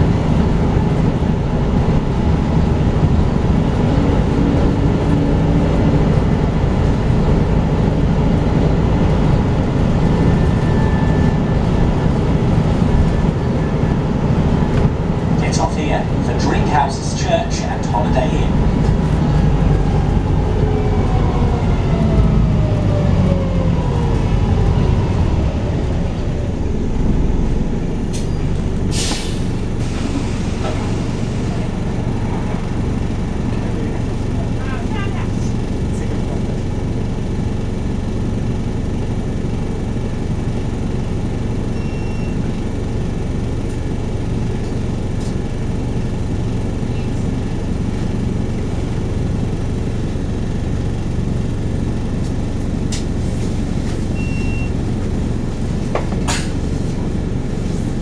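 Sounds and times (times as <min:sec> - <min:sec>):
bus diesel engine: 0:00.0 - 0:58.0
compressed air hiss: 0:28.9 - 0:31.5.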